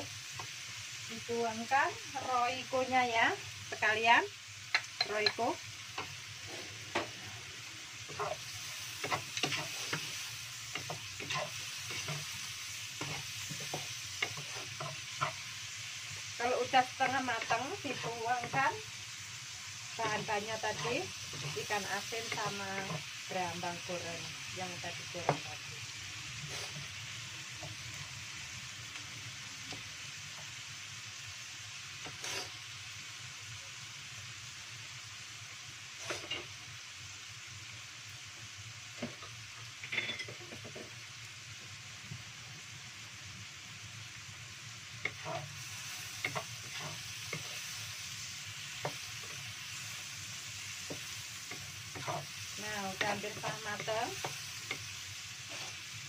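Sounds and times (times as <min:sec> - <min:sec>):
chilies and garlic sizzling in oil: 0:00.0 - 0:56.0.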